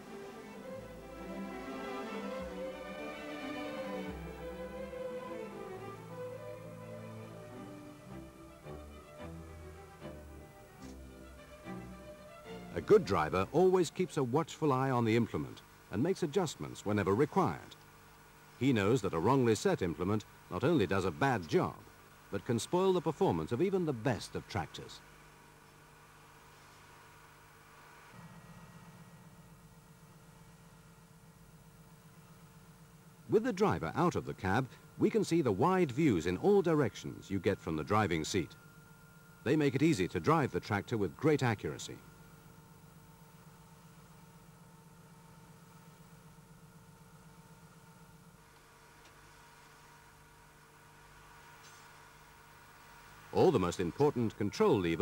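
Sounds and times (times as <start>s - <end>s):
tractor diesel engine hum: 0.0s - 17.7s, 33.3s - 43.0s
faint low hum: 0.0s - 55.0s.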